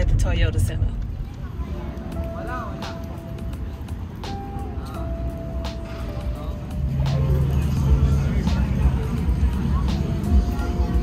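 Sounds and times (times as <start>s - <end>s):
music with long held notes: 1.4s - 11.0s
heavy bass line: 5.8s - 11.0s.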